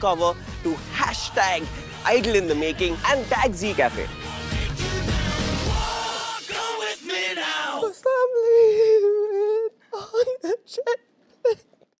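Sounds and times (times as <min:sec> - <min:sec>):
man wailing sobs: 0:08.4 - 0:11.8.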